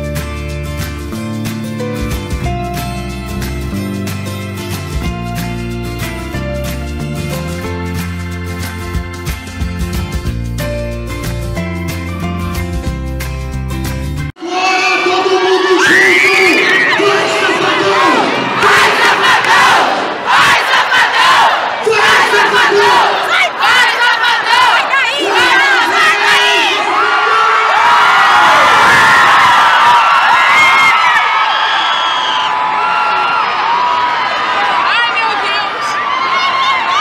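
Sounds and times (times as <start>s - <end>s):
crowd cheering and screaming: 14.4s - 37.0s.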